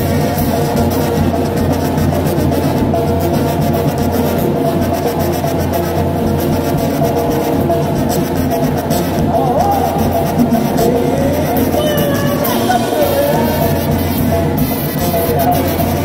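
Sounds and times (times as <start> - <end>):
brass band playing: 0.0 - 16.0.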